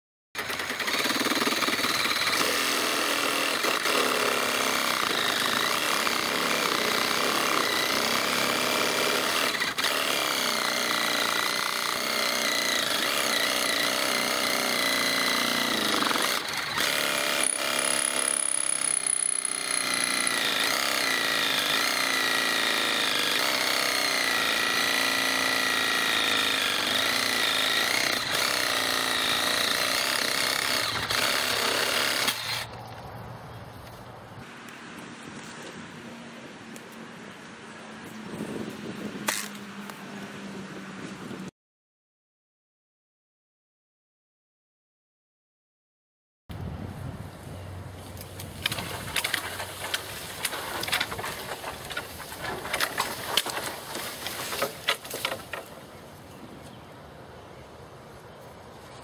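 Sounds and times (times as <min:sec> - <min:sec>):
reciprocating saw cutting wood: 0:00.4 - 0:32.8, 0:48.6 - 0:56.0.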